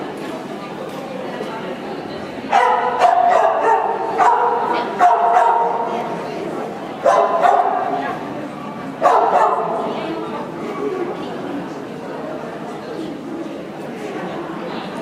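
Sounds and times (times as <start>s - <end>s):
dog yelping barks: 2.6s - 5.8s.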